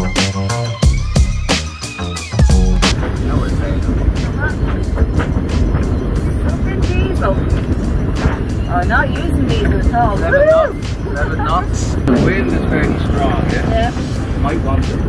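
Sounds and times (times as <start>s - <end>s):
wind blowing across microphone: 2.8s - 15.0s.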